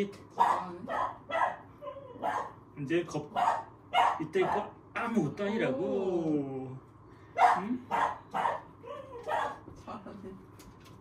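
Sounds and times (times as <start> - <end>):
small puppy barking: 0.4 - 2.6, 3.3 - 4.7, 7.4 - 9.7.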